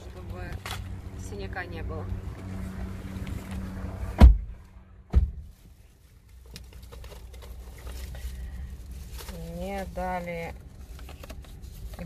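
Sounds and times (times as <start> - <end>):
car engine humming: 0.0 - 12.0.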